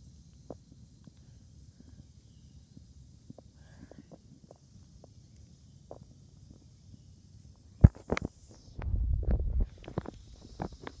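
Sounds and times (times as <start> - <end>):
steady high hiss: 0.0 - 11.0
low rumble: 8.8 - 10.1.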